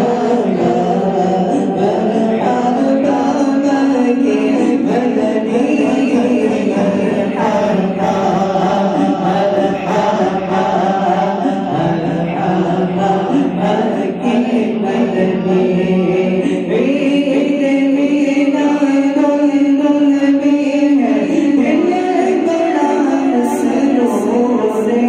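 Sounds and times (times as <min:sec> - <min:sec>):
many voices chanting devotional song: 0:00.0 - 0:25.0.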